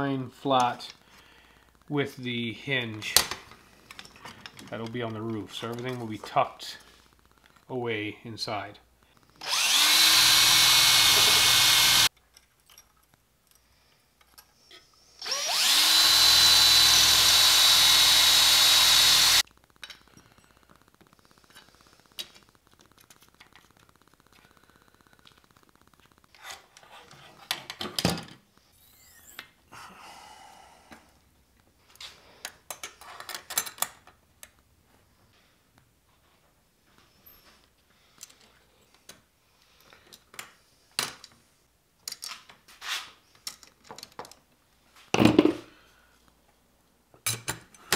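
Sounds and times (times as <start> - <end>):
electric power tool motor: 9.2 - 12.1, 15.2 - 19.5
metal hardware clicking and rattling: 12.1 - 13.6, 32.4 - 34.6.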